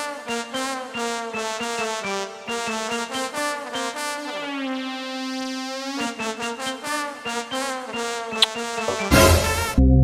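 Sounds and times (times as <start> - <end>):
brass-like melody: 0.0 - 10.0.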